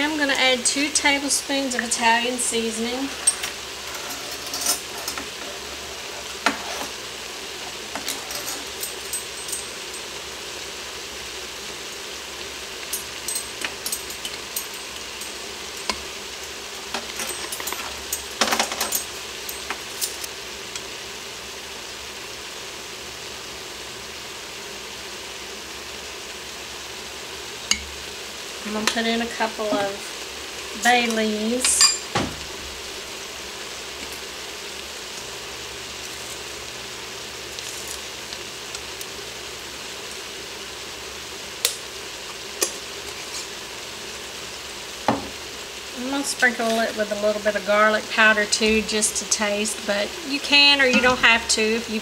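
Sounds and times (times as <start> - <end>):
meat and vegetables sizzling: 0.0 - 52.0
spoon and jar clinking: 31.7 - 32.1, 51.0 - 51.3.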